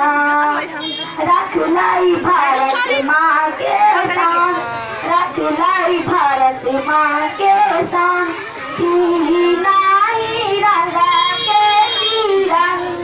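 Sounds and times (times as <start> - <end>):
girl singing into a microphone: 0.0 - 13.0.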